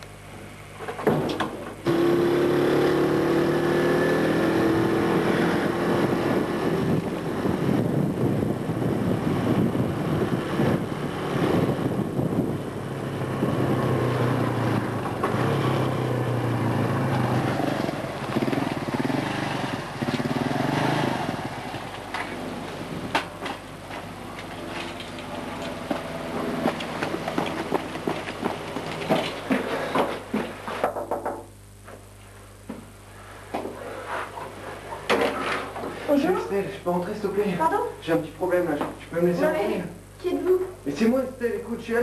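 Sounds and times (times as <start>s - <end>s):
small motorcycle engine revving: 1.8s - 29.6s.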